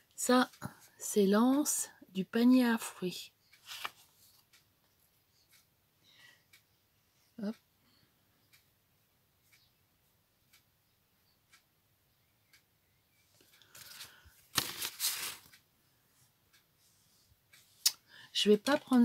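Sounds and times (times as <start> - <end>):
faint regular ticks: 2.4 - 8.8, 9.4 - 11.8, 12.4 - 14.4, 16.5 - 19.0
paper rustling: 3.6 - 4.4, 13.6 - 15.6.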